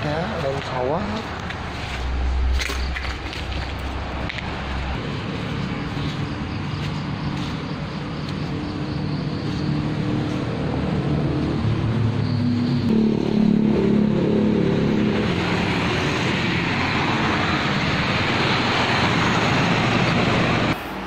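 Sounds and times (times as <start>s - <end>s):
vehicle engine running: 0.0s - 20.8s
traffic passing: 0.0s - 21.0s.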